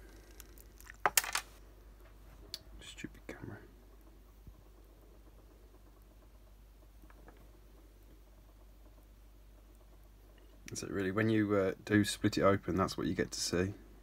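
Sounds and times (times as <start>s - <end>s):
sharp clicks and knocks: 3.9s - 11.4s.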